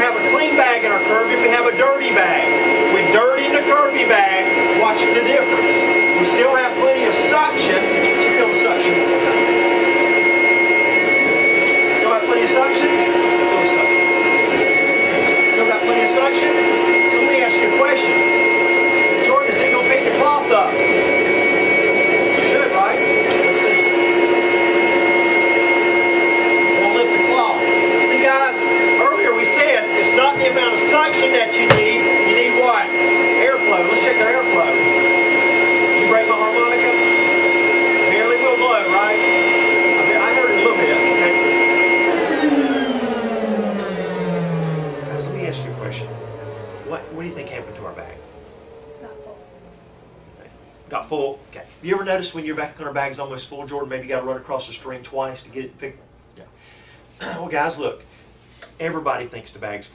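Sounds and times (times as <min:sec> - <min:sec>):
motor spinning down: 0:00.0 - 0:51.2
vacuum cleaner motor whine: 0:00.0 - 0:54.9.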